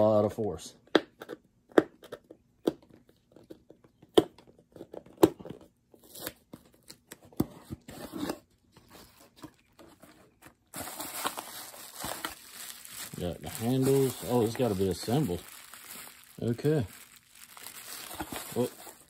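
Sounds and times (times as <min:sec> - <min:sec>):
cardboard scraping rustle: 0:07.6 - 0:19.0.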